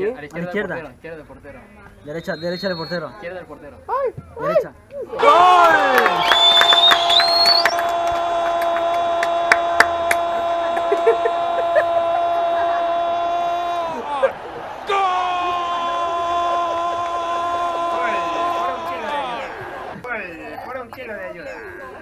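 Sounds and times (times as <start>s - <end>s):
sharp claps: 5.6s - 11.6s
person shouting long notes: 7.8s - 19.6s.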